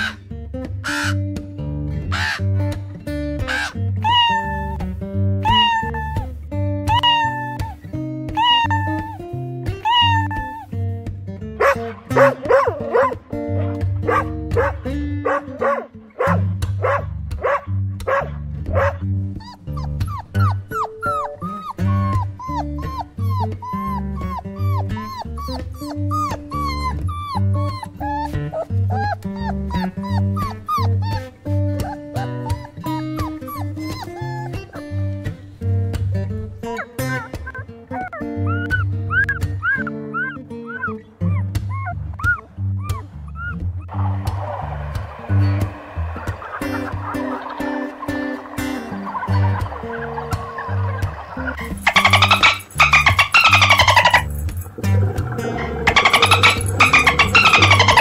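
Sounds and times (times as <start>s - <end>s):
puppies squeaking and whimpering: 0.0s - 0.2s, 3.4s - 6.3s, 6.9s - 10.8s, 11.6s - 17.0s, 18.1s - 35.4s, 36.2s - 44.7s, 46.2s - 58.0s
background music: 0.0s - 58.0s
cat meowing: 4.0s - 4.8s, 5.4s - 6.3s, 6.9s - 7.7s, 8.4s - 9.2s, 9.8s - 10.7s.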